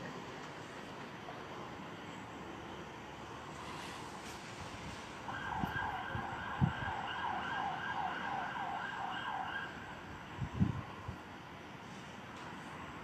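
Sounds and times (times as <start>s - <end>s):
siren yelping: 5.3s - 9.8s.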